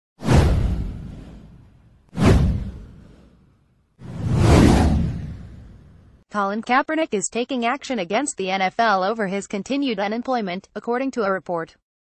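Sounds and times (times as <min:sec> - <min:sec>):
whoosh swish: 0:00.2 - 0:06.2
low rumble: 0:04.0 - 0:06.2.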